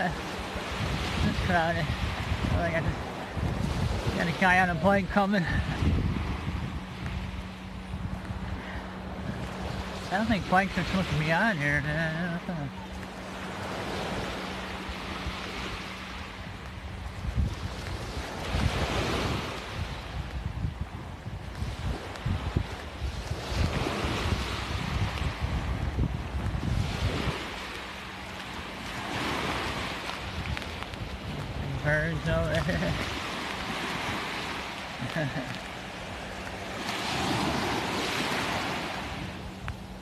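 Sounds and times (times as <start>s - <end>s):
small waves breaking on sand: 0.0s - 40.0s
wind rumbling on microphone: 0.0s - 40.0s.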